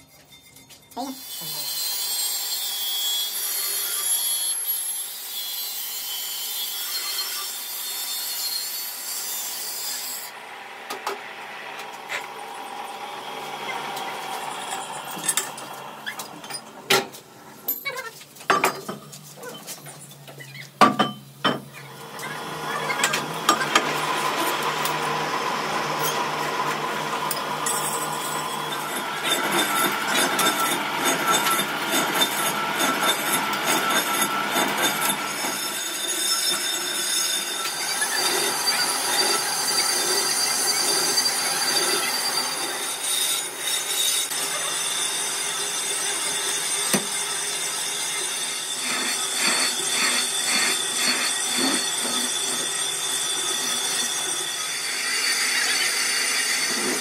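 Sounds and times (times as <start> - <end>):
metal lathe cutting whine: 1.2 - 16.8, 22.0 - 57.0.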